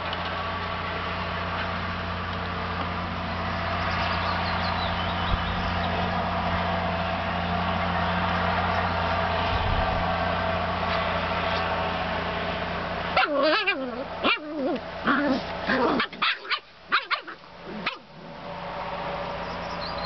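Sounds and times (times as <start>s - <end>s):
puppies yipping and whining: 13.2s - 18.1s.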